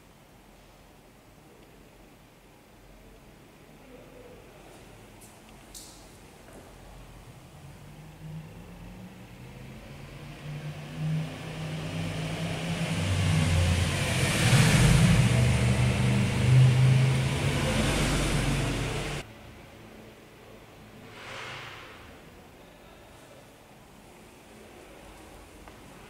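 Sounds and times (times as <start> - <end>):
motor vehicle engine rumble: 9.5 - 19.2.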